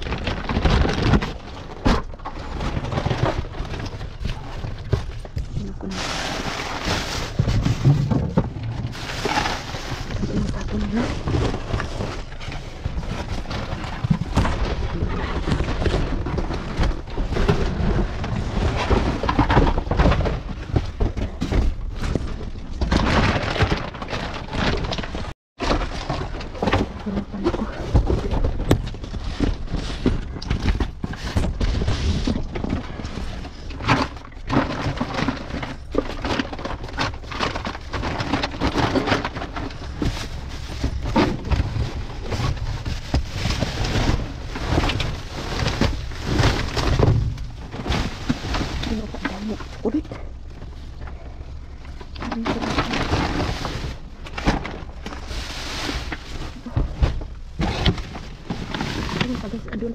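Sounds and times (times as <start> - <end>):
cardboard and plastic bags rustling: 0.0 - 59.9.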